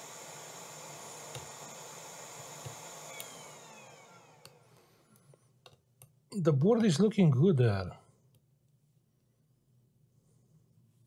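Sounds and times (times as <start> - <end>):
electric fan running: 0.0 - 5.0.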